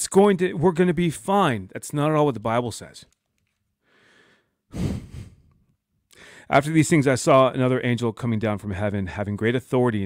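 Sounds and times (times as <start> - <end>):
man sighing: 4.7 - 5.6.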